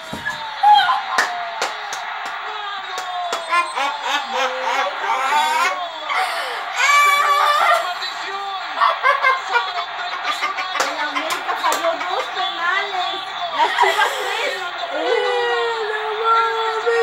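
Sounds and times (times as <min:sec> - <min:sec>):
background music from television: 0:00.0 - 0:17.0
television broadcast voices: 0:00.0 - 0:17.0.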